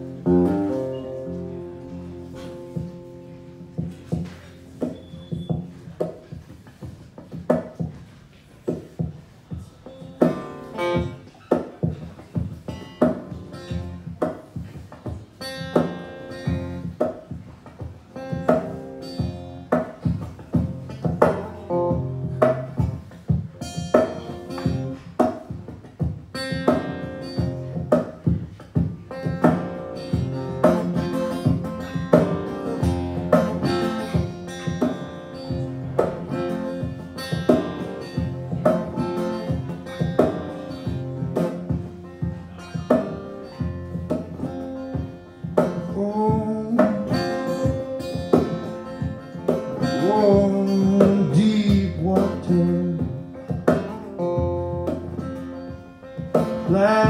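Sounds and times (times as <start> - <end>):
sliding guitar notes: 0.0 - 6.0, 9.6 - 14.6, 15.2 - 57.0
plucked acoustic guitar: 0.0 - 57.0.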